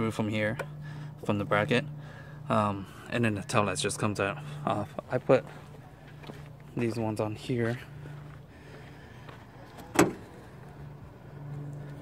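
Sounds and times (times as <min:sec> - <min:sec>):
car trunk lid thud: 0:09.9 - 0:10.3.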